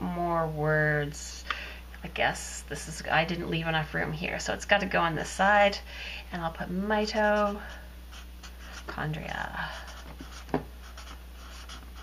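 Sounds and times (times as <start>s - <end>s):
marker writing on paper: 9.8s - 12.0s.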